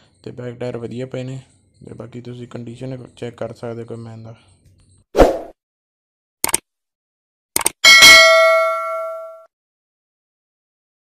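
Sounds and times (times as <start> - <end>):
bell chime: 7.8 - 9.5.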